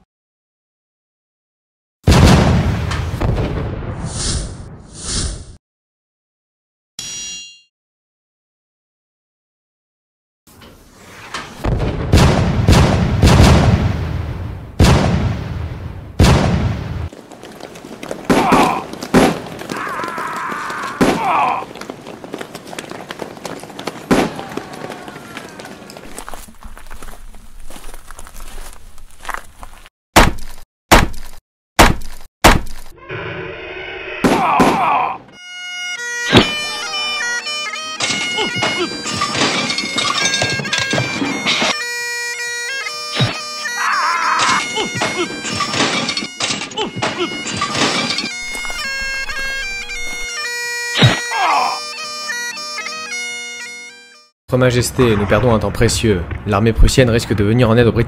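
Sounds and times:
loud bangs: 2.1 - 4.0, 11.6 - 17.1, 18.2 - 21.7, 23.8 - 25.6, 36.2 - 41.5
bagpipes playing over drone: 35.4 - 54.3
sharp crashes: 36.2 - 41.7.

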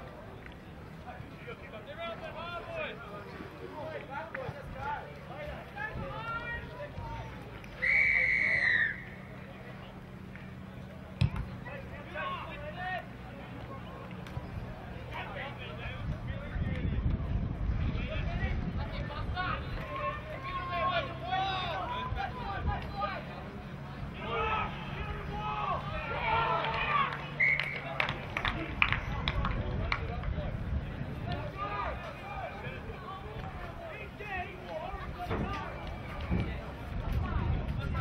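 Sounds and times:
low outdoor rumble: 0.0 - 38.0
people calling and shouting: 0.0 - 38.0.

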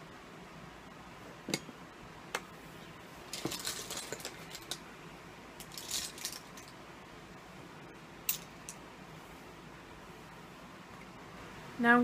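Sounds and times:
low room noise hiss: 0.0 - 12.0.

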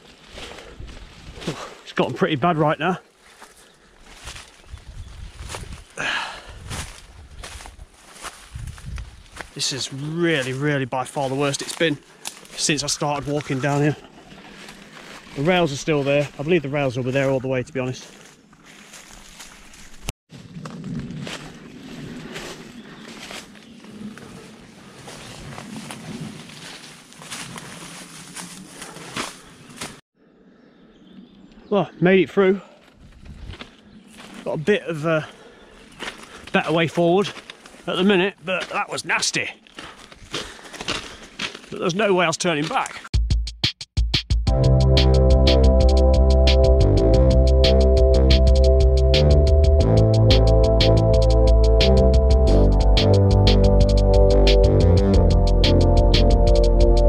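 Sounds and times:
footsteps through undergrowth: 0.0 - 1.9, 3.0 - 30.0, 32.7 - 43.0
leaves and stems rustling: 3.1 - 6.0, 6.6 - 30.0, 32.8 - 34.7, 35.4 - 39.0
branches snapping: 11.6 - 12.6, 25.6 - 30.0, 37.3 - 37.9.

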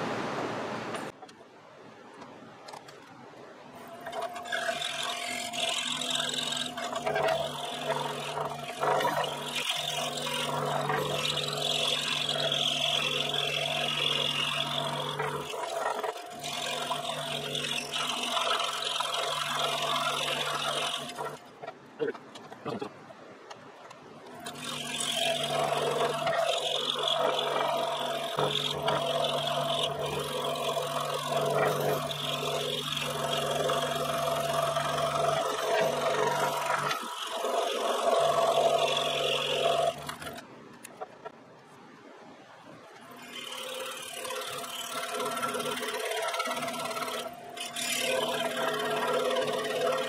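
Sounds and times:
saw blade rasping in wood: 3.8 - 21.5, 24.3 - 40.4, 43.0 - 50.0
scroll saw motor hum: 3.8 - 22.5, 24.2 - 41.4, 42.9 - 50.0.

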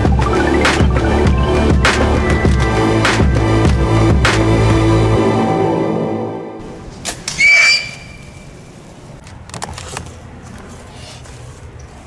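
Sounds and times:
hog squealing: 7.4 - 8.4.

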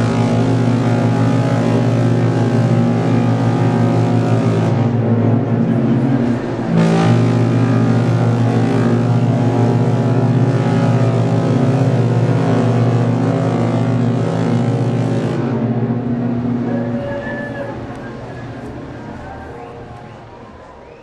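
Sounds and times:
ship horns blasting: 0.0 - 20.6.

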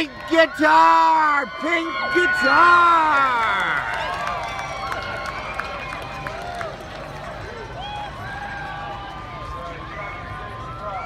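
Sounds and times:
crowd calls and chatter: 0.0 - 11.0.

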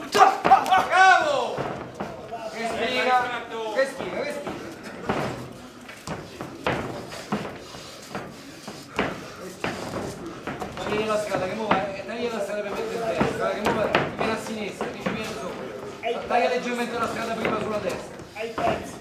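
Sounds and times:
boxing gloves striking: 0.0 - 3.0
men shouting: 0.0 - 3.8.

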